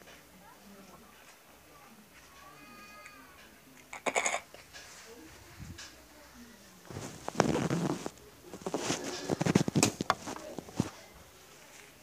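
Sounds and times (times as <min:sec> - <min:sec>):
faint high-pitched wavering call: 0:02.5 - 0:03.4
phone handling rustle: 0:06.9 - 0:11.0.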